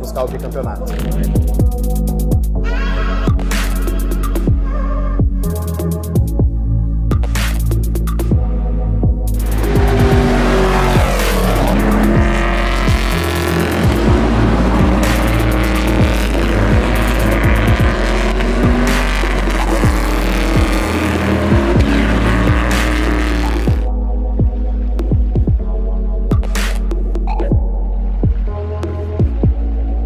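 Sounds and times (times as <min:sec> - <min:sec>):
electronic music with heavy bass: 0:00.0 - 0:30.0
race cars at high revs passing: 0:09.4 - 0:23.9.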